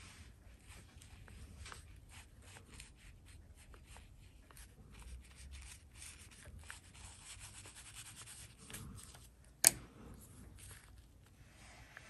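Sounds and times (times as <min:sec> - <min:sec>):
brush rubbing on paper: 0:00.0 - 0:09.2
low room rumble: 0:00.0 - 0:12.0.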